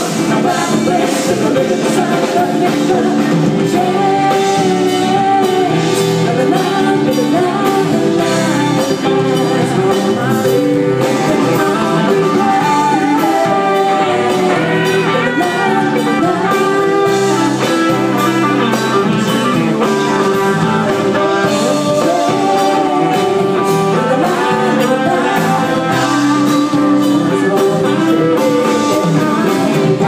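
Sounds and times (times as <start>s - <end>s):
drum kit: 0.0s - 30.0s
electric guitar: 0.0s - 30.0s
keyboards: 0.0s - 30.0s.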